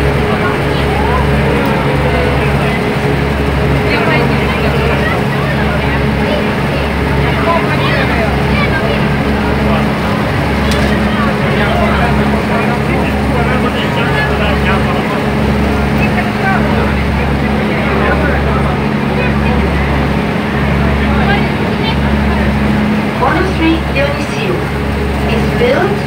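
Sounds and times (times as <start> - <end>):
boat engine drone: 0.0 - 26.0
constant rushing noise: 0.0 - 26.0.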